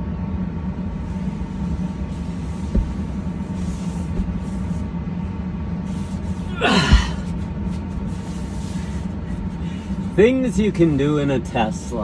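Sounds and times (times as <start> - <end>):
steady low hum: 0.0 - 12.0
man gasping or groaning: 6.4 - 7.3.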